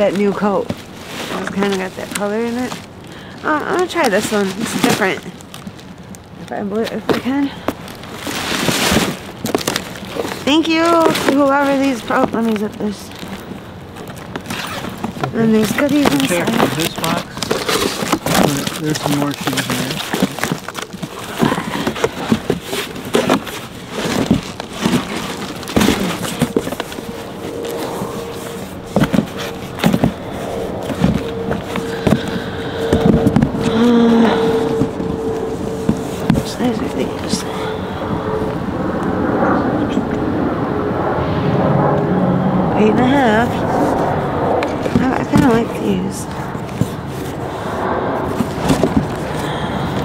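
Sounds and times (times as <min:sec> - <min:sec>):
steady hum: 0:00.0 - 0:50.0.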